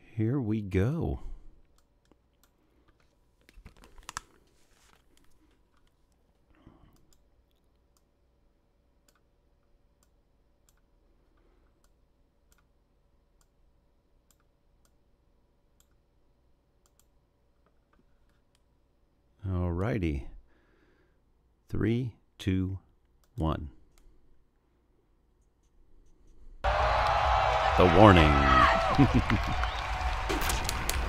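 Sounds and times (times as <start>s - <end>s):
headphones handling noise: 2.8s - 6.5s.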